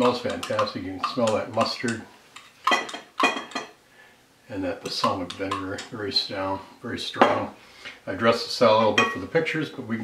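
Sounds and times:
metal spoon clinking glass jar: 0.0s - 3.8s.

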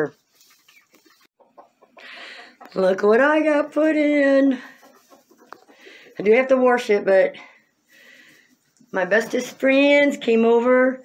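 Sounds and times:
young chickens clucking softly: 0.2s - 3.0s, 4.6s - 6.2s.

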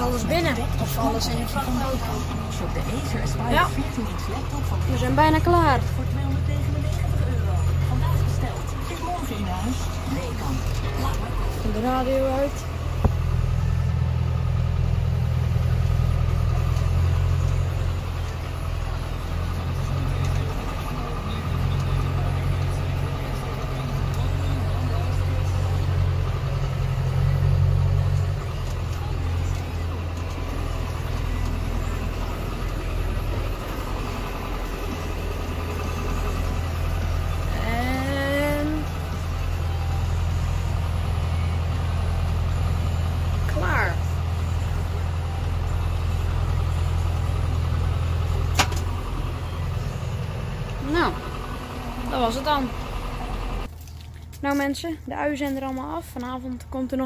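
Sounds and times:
tractor engine drone: 0.0s - 57.0s.

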